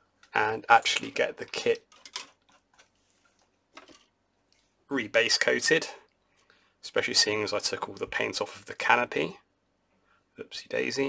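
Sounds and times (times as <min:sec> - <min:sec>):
faint clicks and taps: 0:01.0 - 0:04.7.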